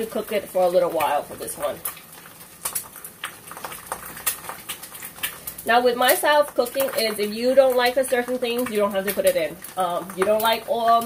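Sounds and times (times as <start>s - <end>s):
water boiling: 0.0s - 11.0s.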